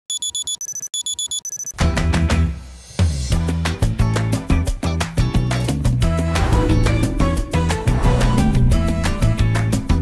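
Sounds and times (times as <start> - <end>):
alarm clock beeping: 0.1 - 1.8
upbeat music with heavy bass: 3.1 - 10.0.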